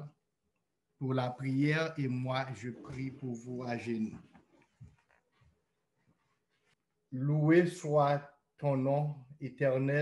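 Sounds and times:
man's voice: 7.2s - 10.0s.

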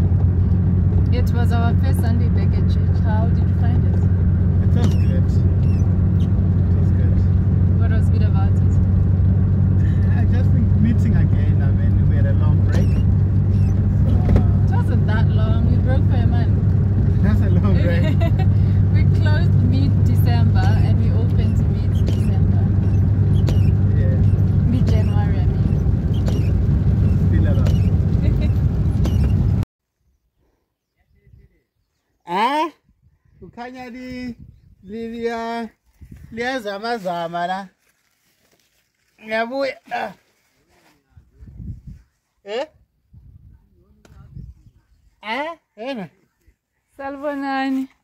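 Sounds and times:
car engine drone and road noise: 0.0s - 29.7s
people talking: 1.1s - 4.0s, 4.6s - 5.5s, 6.7s - 8.8s, 9.8s - 13.0s, 14.0s - 16.5s, 17.2s - 22.8s, 23.9s - 25.8s, 27.2s - 28.6s.

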